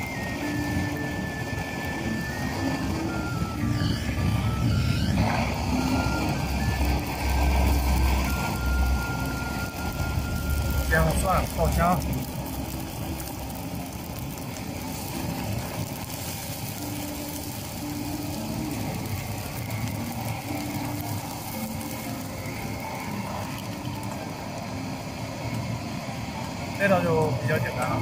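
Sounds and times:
garlic sizzling in hot oil: 0:00.0 - 0:28.0.

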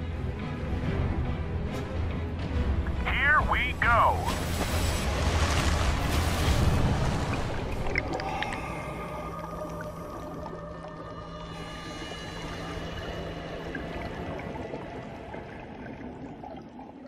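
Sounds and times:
muffled underwater rushing: 0:03.1 - 0:17.0.

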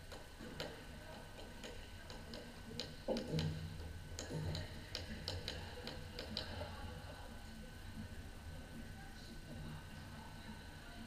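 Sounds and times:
echoing sharp clicks and taps: 0:00.1 - 0:06.6.

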